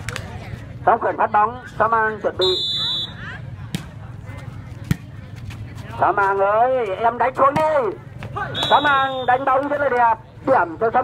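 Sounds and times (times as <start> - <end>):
outdoor crowd murmur: 0.0 - 11.0.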